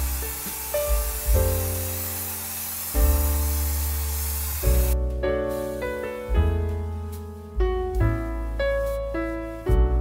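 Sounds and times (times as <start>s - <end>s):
spray paint can hissing: 0.0s - 5.0s
slow sustained chords music: 0.0s - 10.0s.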